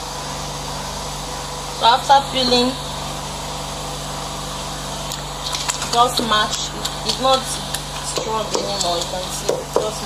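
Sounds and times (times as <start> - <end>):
steady low hum: 0.0 - 10.0
pestle pounding in a mortar: 6.8 - 10.0.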